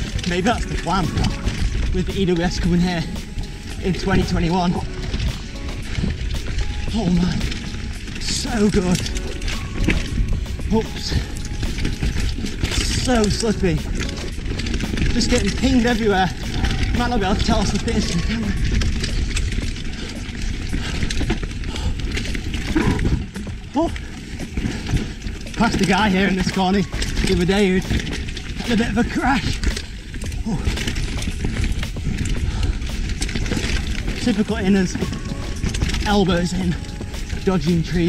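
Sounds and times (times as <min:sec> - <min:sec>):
background music: 0:00.0 - 0:38.0
bike rattle: 0:00.0 - 0:38.0
bike tyre rumble on dirt trail: 0:00.0 - 0:38.0.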